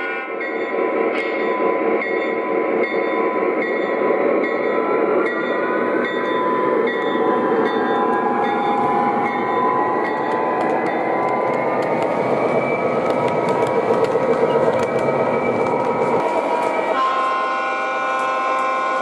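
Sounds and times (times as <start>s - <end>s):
model train running on track: 0.0s - 19.0s.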